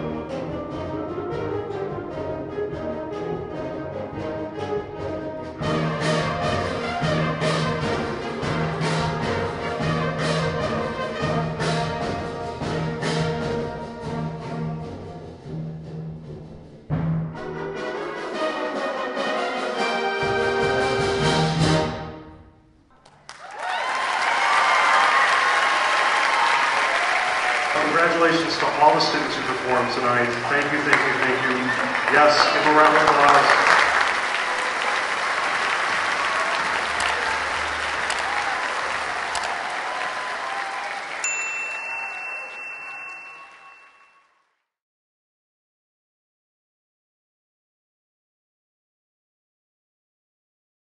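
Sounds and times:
symphonic band playing: 0.0 - 15.6, 17.3 - 22.2
audience applauding: 23.0 - 44.2.

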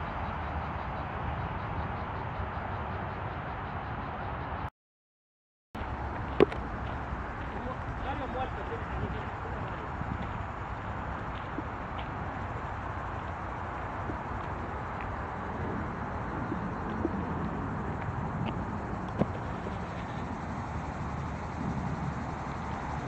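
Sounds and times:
wind rumbling on microphone: 0.0 - 4.7, 5.8 - 23.0
footsteps on a paved path: 5.8 - 20.4.

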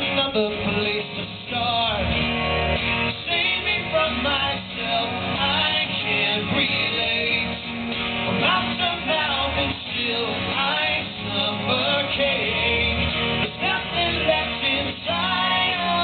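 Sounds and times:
man singing wordlessly: 0.0 - 2.2, 3.1 - 7.6, 8.4 - 16.0
acoustic guitars strumming and picking: 0.0 - 16.0.

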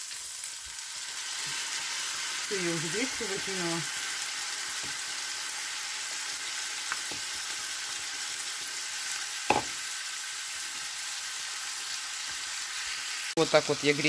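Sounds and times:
vegetables sizzling in a pan: 0.0 - 14.0
knock: 9.5 - 9.8.

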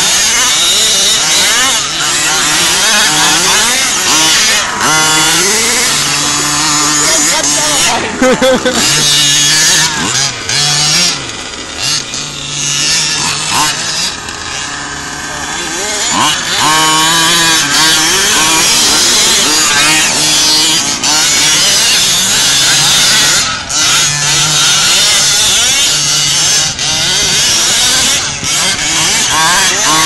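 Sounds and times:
small two-stroke engines revving: 0.0 - 30.0.

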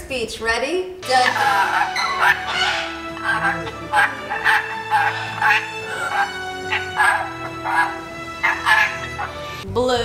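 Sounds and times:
background music with held notes: 0.9 - 10.0
parrot chattering calls: 1.0 - 9.6.

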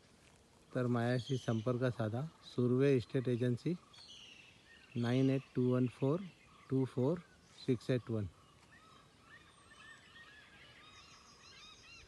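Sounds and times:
faint bird chirps: 0.7 - 12.0.

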